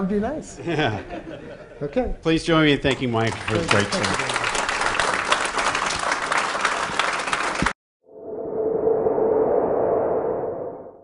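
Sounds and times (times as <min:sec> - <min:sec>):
steady low tone: 0:08.1 - 0:11.0
synthesized whoosh: 0:08.1 - 0:11.0.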